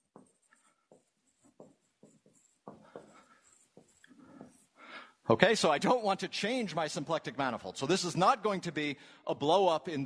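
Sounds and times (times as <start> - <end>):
marker writing on whiteboard: 0.0 - 4.8.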